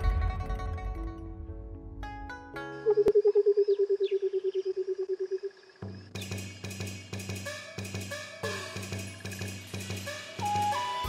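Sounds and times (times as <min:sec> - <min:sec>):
faint high bird chirps: 0:02.8 - 0:08.2.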